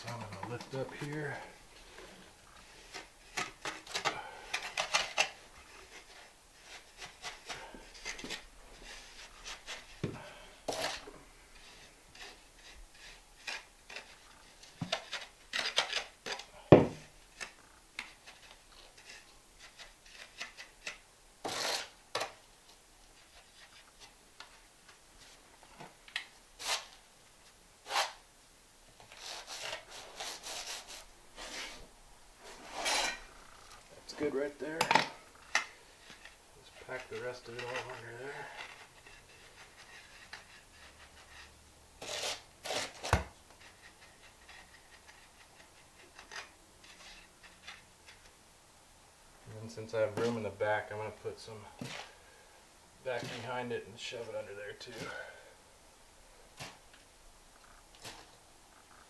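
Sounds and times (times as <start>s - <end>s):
gritty scraping of mortar: 0.0s - 22.3s, 29.1s - 48.3s, 53.0s - 55.4s.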